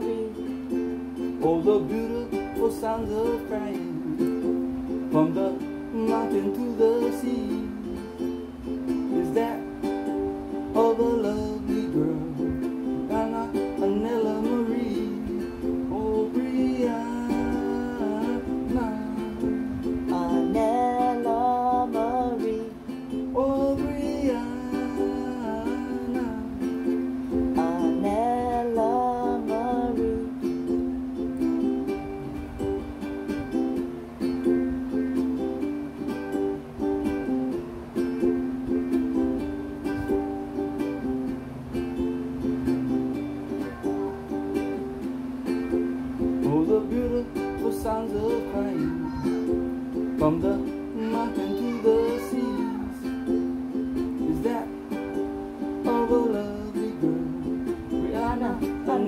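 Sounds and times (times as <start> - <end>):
man singing: 0.0 - 32.6, 42.4 - 45.1, 46.2 - 59.0
ukulele strumming chords: 0.0 - 59.0.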